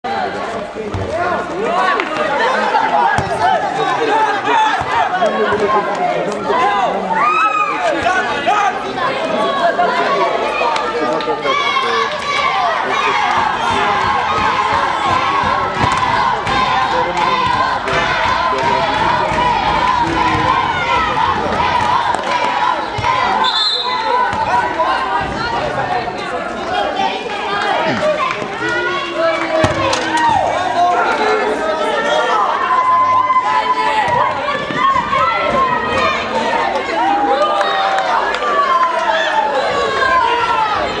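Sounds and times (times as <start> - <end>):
children chattering and shouting: 0.0 - 41.0.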